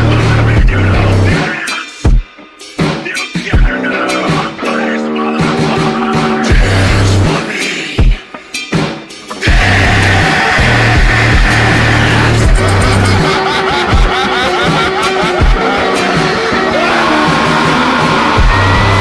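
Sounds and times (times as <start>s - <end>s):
slowed hip-hop with booming bass: 0.0s - 1.8s, 5.2s - 8.2s, 9.4s - 16.7s, 17.3s - 19.0s.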